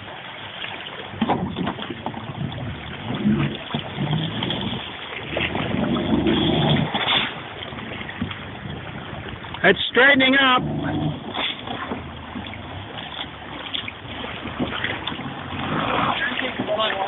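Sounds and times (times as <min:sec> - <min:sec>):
outboard engine revving: 0:00.0 - 0:17.0
water churning: 0:00.0 - 0:17.0.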